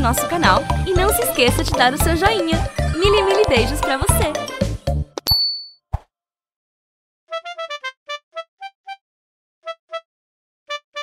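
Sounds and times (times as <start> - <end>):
bright high ding: 5.3 - 5.8.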